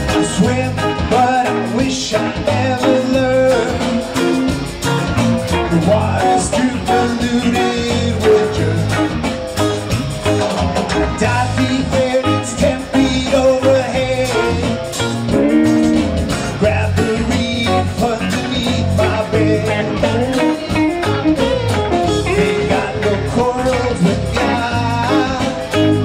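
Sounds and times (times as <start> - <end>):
person singing: 0.0 - 4.4, 5.6 - 9.3, 11.0 - 26.0
bass guitar: 0.0 - 26.0
drums: 0.0 - 26.0
electric guitars: 0.0 - 26.0.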